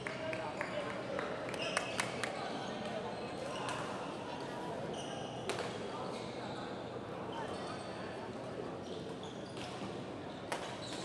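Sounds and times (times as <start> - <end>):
shoe squeak on court floor: 4.9 - 6.6, 7.3 - 7.9, 8.8 - 11.0.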